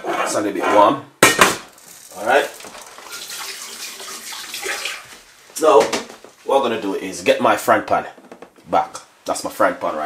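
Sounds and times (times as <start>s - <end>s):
man talking: 0.0s - 1.1s, 2.1s - 2.6s, 5.6s - 10.0s
water running from tap: 1.8s - 5.6s.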